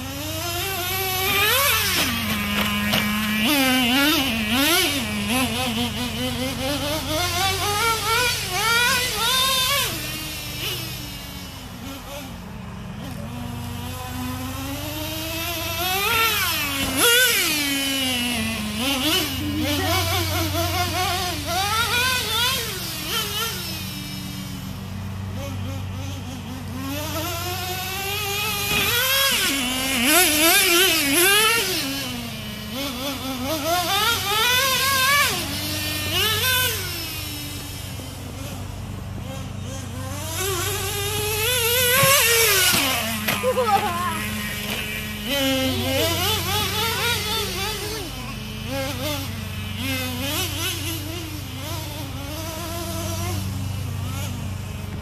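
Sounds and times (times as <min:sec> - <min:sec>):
small nitro engine revving: 0:00.0 - 0:55.0.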